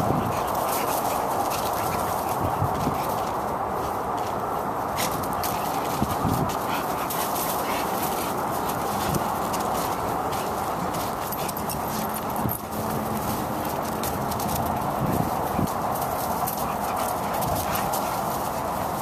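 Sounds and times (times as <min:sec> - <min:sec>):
dogs panting: 0:00.0 - 0:19.0
paws scuffling over dry leaves: 0:00.0 - 0:19.0
steady background noise: 0:00.0 - 0:19.0.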